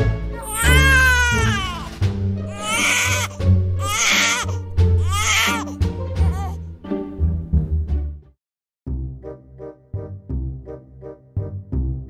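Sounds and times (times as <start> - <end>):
background music with low notes: 0.0 - 12.0
baby crying: 0.2 - 6.6.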